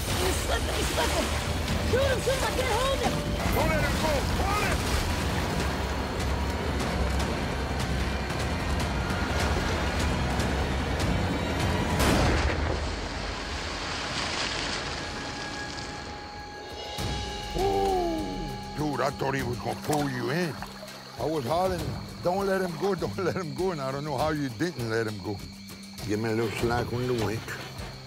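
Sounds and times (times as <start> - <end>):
loud sharp splash: 0.0 - 5.9, 12.0 - 16.2
alligator thrashing in water: 0.0 - 6.1, 12.1 - 16.0.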